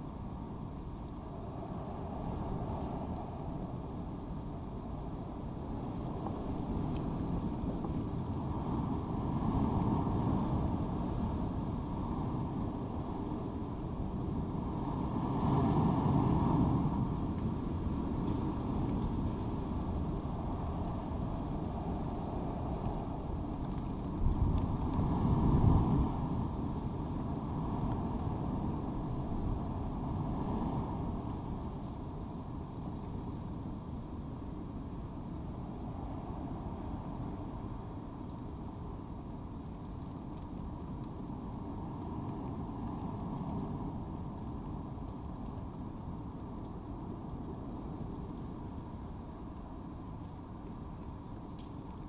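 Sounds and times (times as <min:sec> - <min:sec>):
low outdoor rumble: 0:00.0 - 0:52.0.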